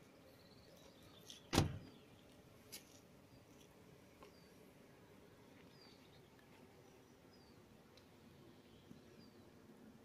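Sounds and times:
faint outdoor background: 0.0 - 10.0
sharp thump: 1.5 - 1.9.

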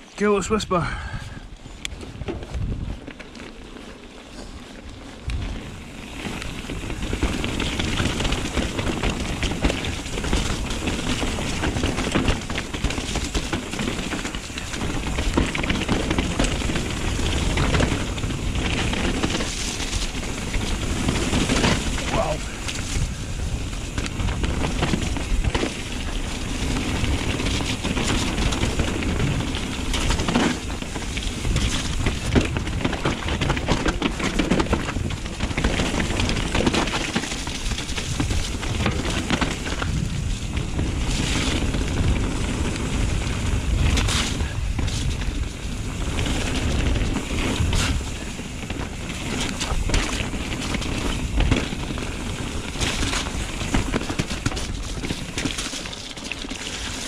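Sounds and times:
bike rattling and knocking: 0.0 - 57.0
bike tyre rumble on dirt: 0.0 - 57.0.

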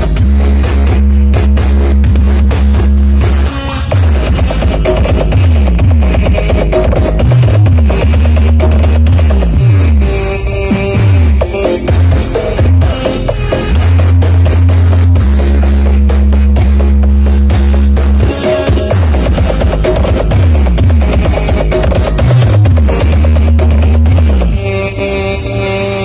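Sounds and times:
loud music with deep bass: 0.0 - 26.0.

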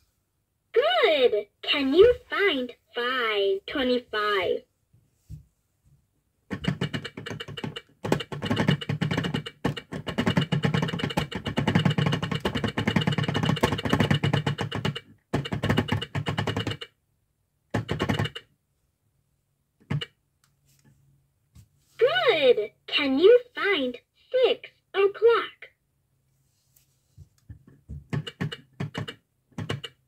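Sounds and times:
plastic gears clicking rapidly: 6.5 - 16.9.

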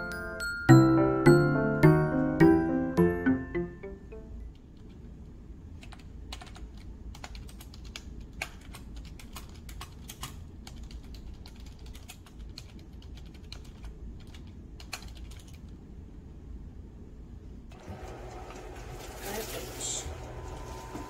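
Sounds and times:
steady low hum: 1.0 - 21.0.

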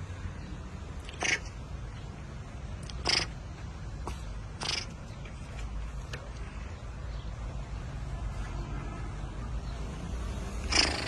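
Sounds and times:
water buffalo snorting: 3.0 - 3.3, 4.6 - 4.9.

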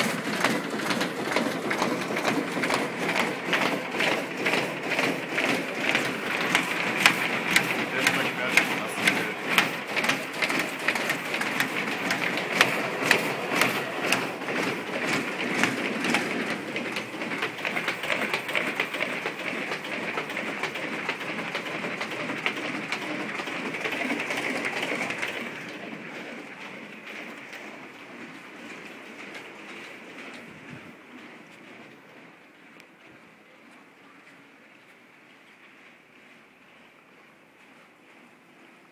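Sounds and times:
printing machine clattering: 0.0 - 32.1.

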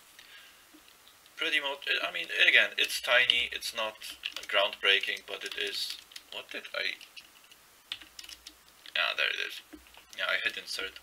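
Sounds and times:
computer keyboard key presses: 7.9 - 8.6.

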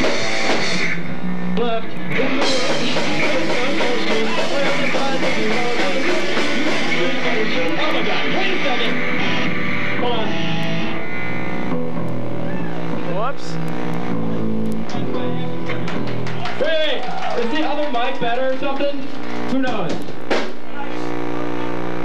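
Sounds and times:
punk rock band playing: 0.0 - 22.0
sustained guitar and bass notes: 0.0 - 22.0.

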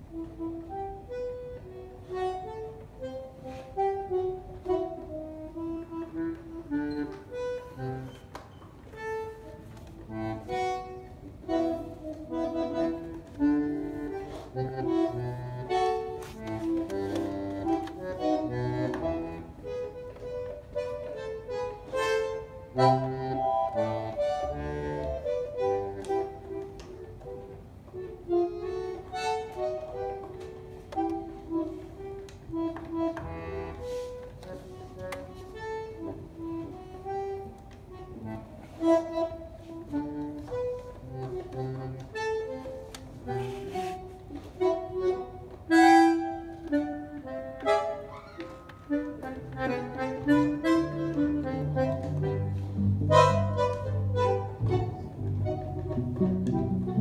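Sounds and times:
bandoneon melody: 0.0 - 57.0.

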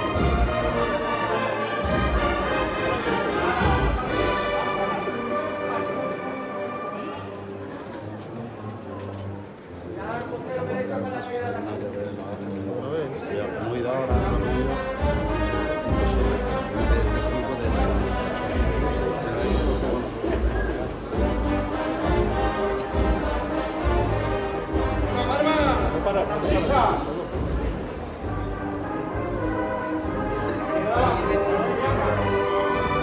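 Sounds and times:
brass band melody: 0.0 - 7.6, 14.0 - 33.0.

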